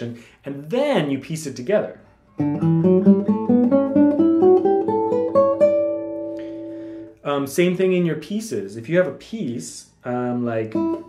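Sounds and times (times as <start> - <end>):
classical guitar fingerstyle notes: 2.3 - 7.1, 10.7 - 11.0.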